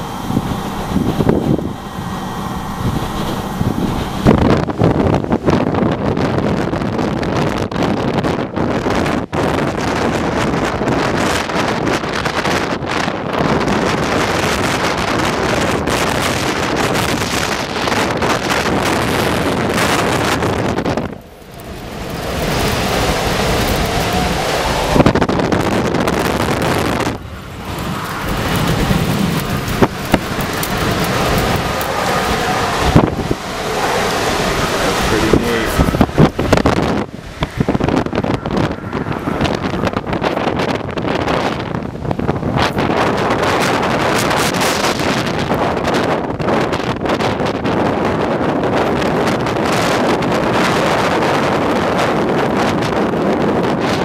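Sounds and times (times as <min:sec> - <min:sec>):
gusty wind buffeting microphone: 0:00.0 - 0:54.0.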